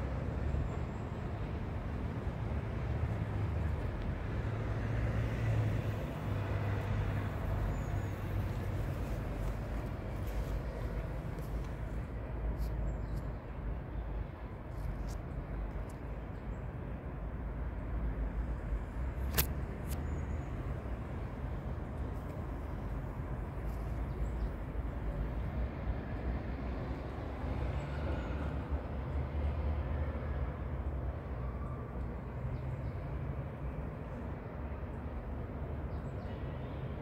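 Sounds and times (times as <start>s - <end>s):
low rumble of road traffic: 0.0s - 37.0s.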